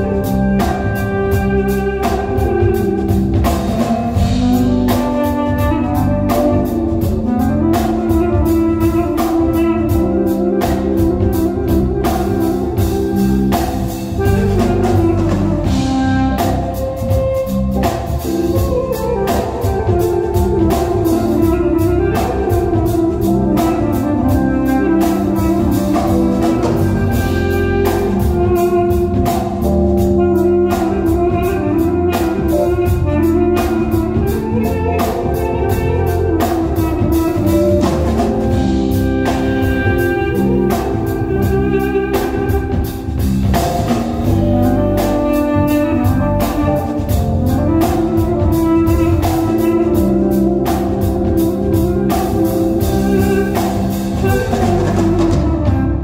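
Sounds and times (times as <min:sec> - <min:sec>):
drum kit steady beat: 0:00.0 - 0:56.0
electric guitar: 0:00.0 - 0:56.0.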